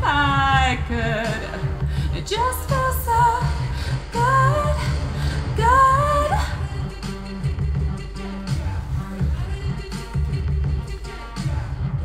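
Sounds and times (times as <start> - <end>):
woman singing wordless phrases: 0.0 - 8.2
pop backing track with bass: 0.0 - 12.0.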